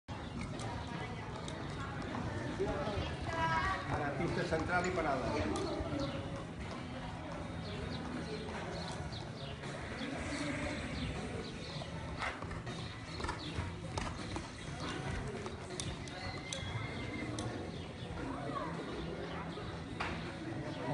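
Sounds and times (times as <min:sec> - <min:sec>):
horse hoofbeats on sand: 0:00.5 - 0:18.0.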